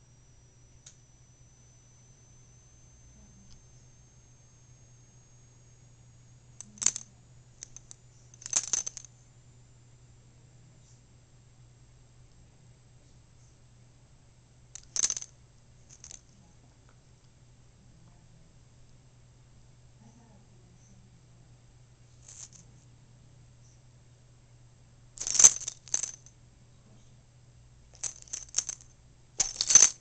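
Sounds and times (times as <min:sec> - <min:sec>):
metal collar tag jingling: 0:06.6 - 0:09.1, 0:25.2 - 0:26.3, 0:28.0 - 0:28.8, 0:29.4 - 0:30.0.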